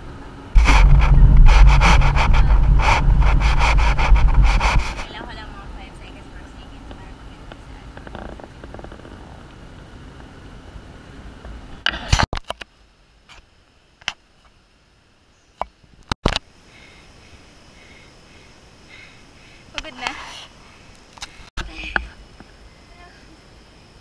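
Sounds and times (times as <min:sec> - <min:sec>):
microphone handling rubbing: 0:00.6 - 0:05.4.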